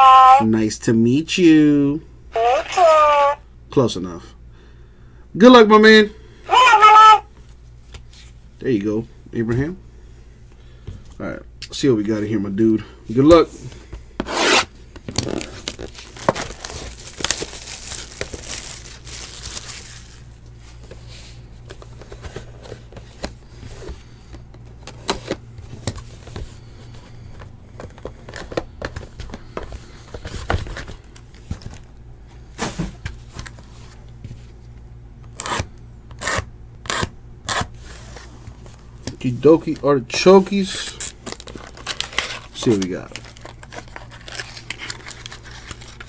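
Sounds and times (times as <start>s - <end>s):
card packs being handled: 13.6s - 34.6s, 35.3s - 46.0s
cellophane wrap tearing and crinkling: 14.4s - 20.3s, 40.6s - 46.0s.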